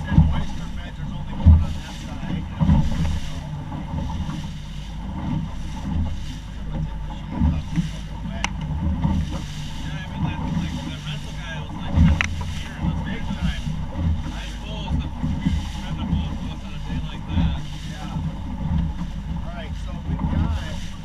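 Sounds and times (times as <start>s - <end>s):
hull thumping on waves: 0.0s - 21.0s
motorboat motor drone: 0.0s - 21.0s
wind buffeting microphone: 0.0s - 21.0s.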